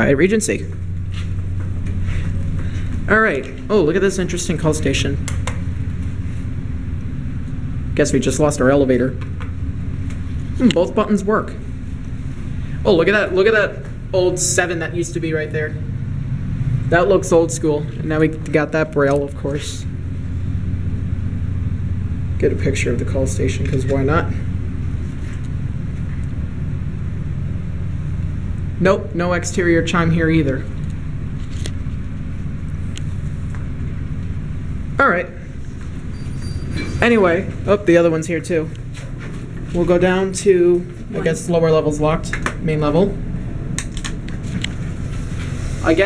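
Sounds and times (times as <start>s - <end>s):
steady low rumble: 0.0s - 46.0s.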